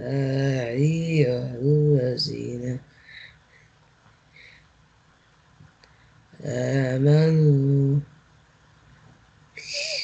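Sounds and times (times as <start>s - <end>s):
breathy hiss of reciter: 0.0s - 8.1s, 9.5s - 10.0s.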